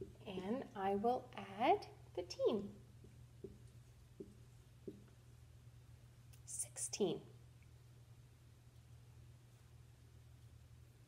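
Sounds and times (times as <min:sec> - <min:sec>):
low steady hum: 0:00.0 - 0:11.0
woman whispering: 0:06.5 - 0:07.2.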